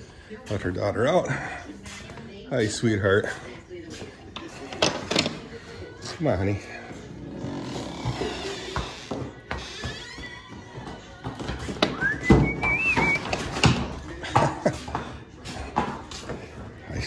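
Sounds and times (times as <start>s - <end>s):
hooves on concrete: 0.0s - 4.8s, 5.4s - 17.0s.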